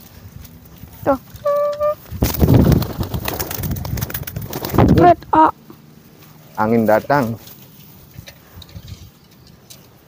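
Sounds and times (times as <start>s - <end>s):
steady-pitched call: 1.4s - 2.0s
pigeon wings flapping: 1.7s - 5.0s.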